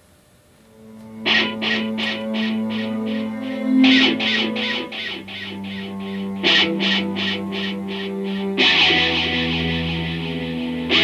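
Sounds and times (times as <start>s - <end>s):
electric guitar picked rhythm: 0.8s - 11.0s.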